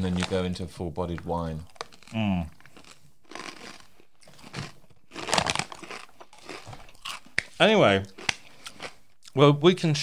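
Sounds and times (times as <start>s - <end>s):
snack packet crinkling: 0.0s - 0.5s, 1.1s - 9.0s.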